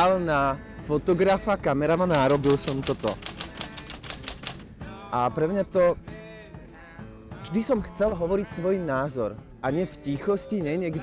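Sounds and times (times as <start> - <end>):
rapid sharp clicks: 2.1 - 4.6.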